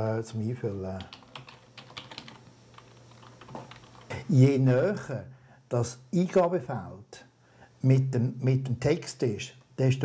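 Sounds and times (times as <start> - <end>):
low steady hum: 0.0 - 10.0
keyboard typing: 1.0 - 4.1.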